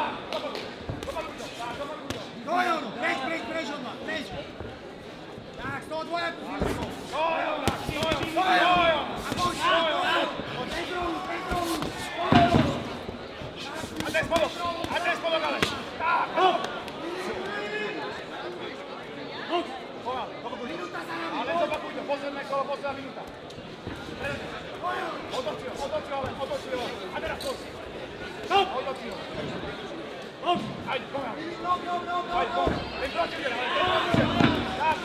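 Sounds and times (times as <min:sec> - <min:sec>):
footwork on ring canvas: 0:04.2 - 0:16.7.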